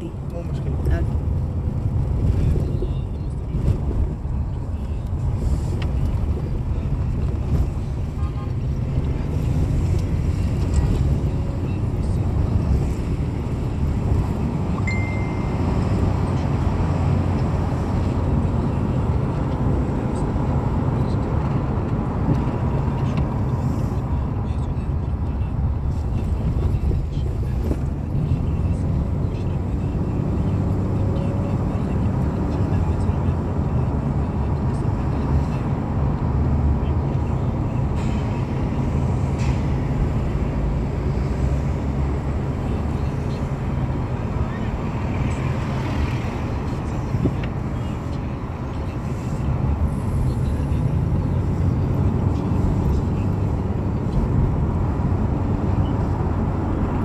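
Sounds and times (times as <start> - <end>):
car road and engine rumble: 0.0 - 57.0
short high beep: 14.8 - 15.9.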